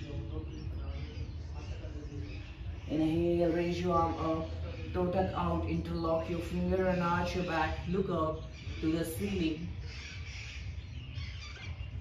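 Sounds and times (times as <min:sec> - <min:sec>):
faint bird chirps: 0:07.2 - 0:12.0.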